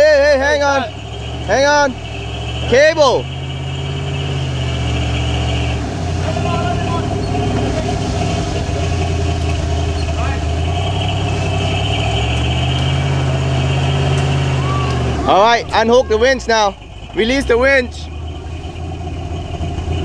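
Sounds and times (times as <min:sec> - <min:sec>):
high steady winch whine: 0:00.0 - 0:20.0
truck engine running: 0:00.0 - 0:20.0.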